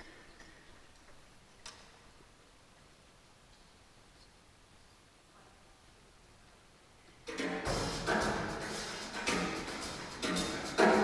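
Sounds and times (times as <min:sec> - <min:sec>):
live jazz band with drums: 0:07.3 - 0:11.0.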